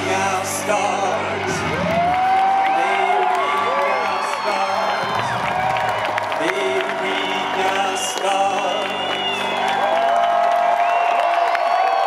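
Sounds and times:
crowd cheering and whooping: 0:00.6 - 0:12.0.

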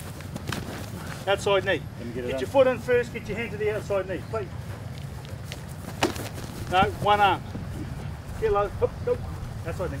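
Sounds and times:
footsteps on grass: 0:02.4 - 0:10.0.

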